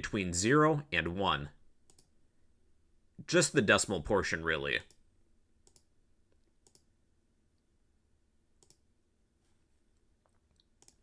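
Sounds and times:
faint computer mouse clicks: 1.9s - 2.1s, 5.6s - 6.9s, 8.6s - 8.8s, 10.6s - 11.0s.

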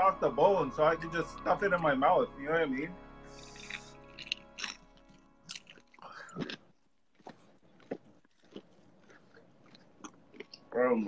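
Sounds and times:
faint music: 0.0s - 6.6s, 9.6s - 11.0s
chewing and smacking: 3.4s - 10.8s.

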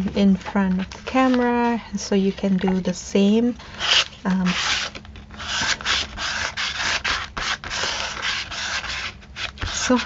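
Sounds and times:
tool scraping on paper: 3.8s - 10.0s.

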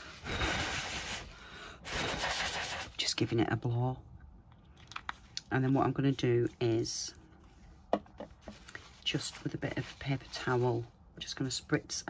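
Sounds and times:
person blowing air: 0.0s - 3.0s.

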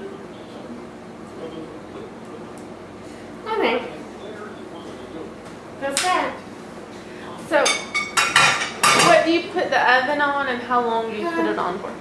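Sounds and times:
utensils and dishes clattering: 7.6s - 9.4s.

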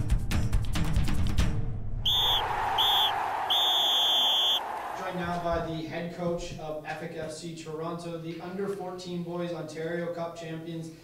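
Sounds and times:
referee's whistle blasts: 2.1s - 4.7s.

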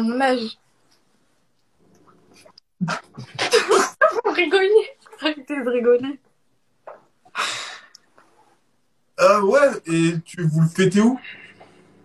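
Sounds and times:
young men laughing loudly: 2.8s - 4.5s.

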